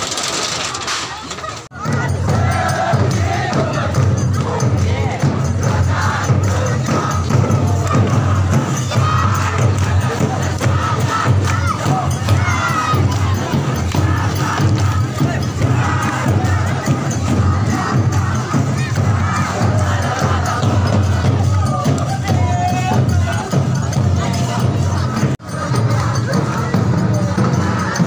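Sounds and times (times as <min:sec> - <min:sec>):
crowd shouting and cheering: 0:00.0 - 0:28.0.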